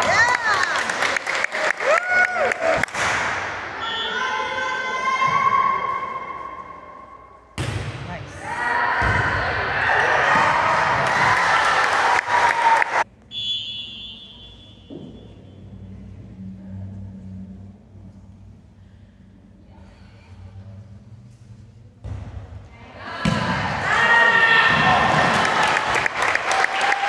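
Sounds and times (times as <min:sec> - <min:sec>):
volleyball smacks and bounces: 0:07.6 - 0:08.1.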